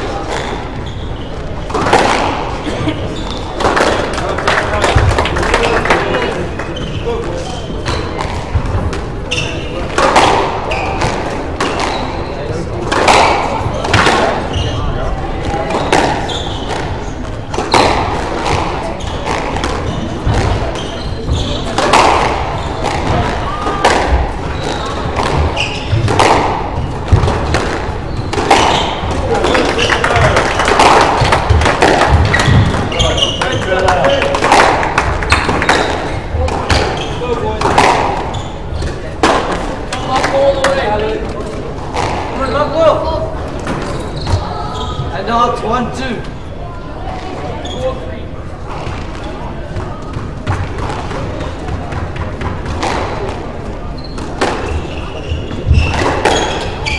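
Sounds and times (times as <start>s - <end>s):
squash ball hits: 1.6s - 2.6s, 3.3s - 6.4s, 7.2s - 14.8s, 15.4s - 42.8s, 48.7s - 56.9s.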